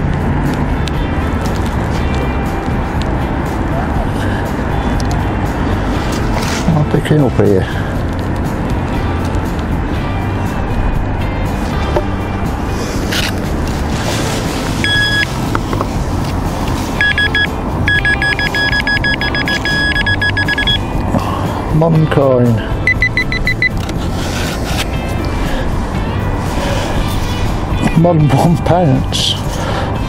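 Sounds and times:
background music: 0.0s - 30.0s
metal detector beeps: 14.8s - 15.4s, 17.0s - 20.8s, 22.8s - 23.8s.

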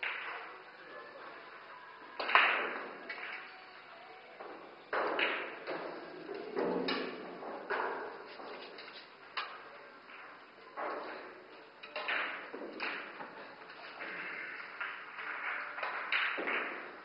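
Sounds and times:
pool balls knocking: 4.4s - 8.7s, 12.0s - 17.0s.

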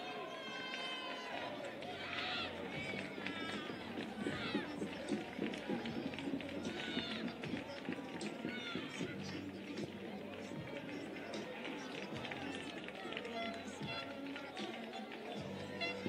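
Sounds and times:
players and spectators shouting: 0.0s - 16.0s
voices chattering: 0.0s - 16.0s.

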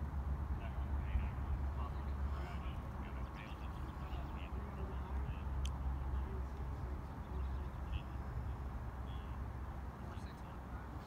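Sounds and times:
distant indistinct voices: 0.4s - 11.0s.

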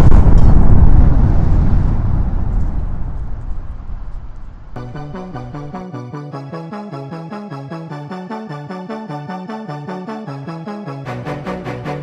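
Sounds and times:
deep cinematic boom: 0.0s - 5.8s.

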